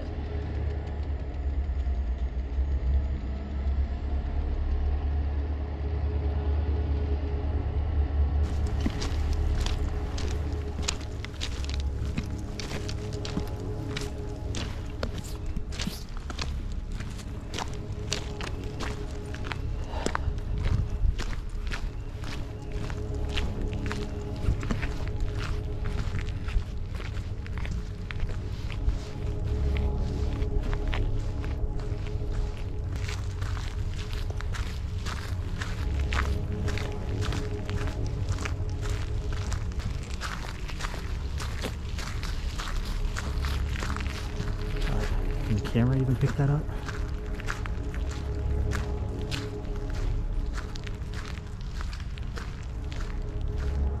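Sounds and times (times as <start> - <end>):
ambient music drone: 0.0 - 54.0
footsteps walking: 8.4 - 54.0.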